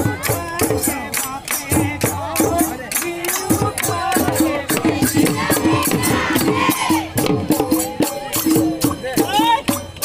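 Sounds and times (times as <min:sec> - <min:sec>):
voices singing: 0:00.0 - 0:09.8
drums beaten in quick rhythm: 0:00.0 - 0:10.0.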